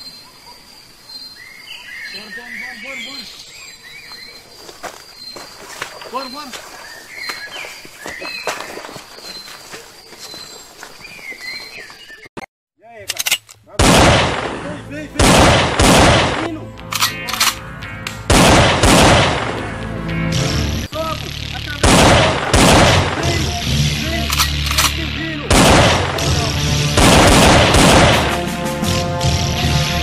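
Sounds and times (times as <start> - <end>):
background music: 14.4 - 21.6, 23.1 - 30.0
gunshots and automatic fire: 15.2 - 17.6, 18.3 - 19.6, 21.7 - 23.6, 24.3 - 28.6.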